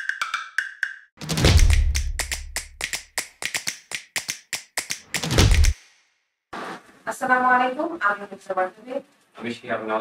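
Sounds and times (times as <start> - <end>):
deep bass hit: 1.2 - 2.6
rapid sharp clicks: 1.2 - 5.9.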